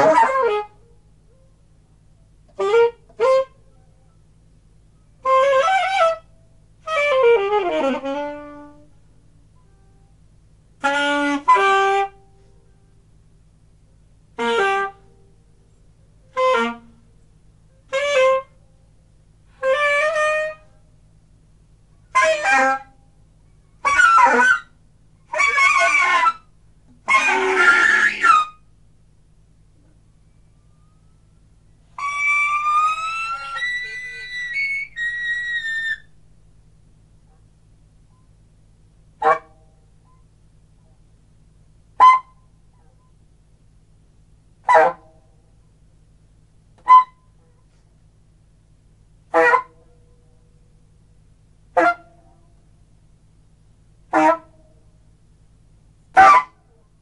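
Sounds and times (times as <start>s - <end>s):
solo alto saxophone improvisation: 0.0s - 28.7s, 29.3s - 42.9s, 51.7s - 54.7s
faint low hum: 0.0s - 57.0s.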